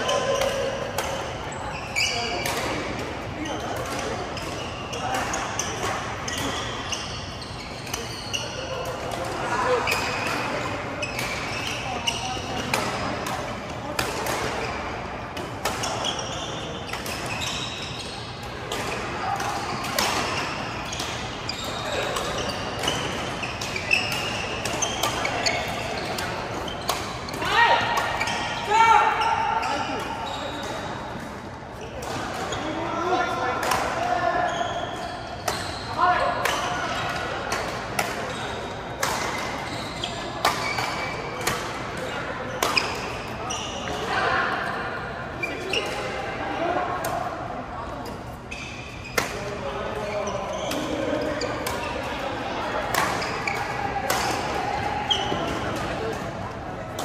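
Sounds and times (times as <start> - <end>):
players' voices: 0.0 - 57.0.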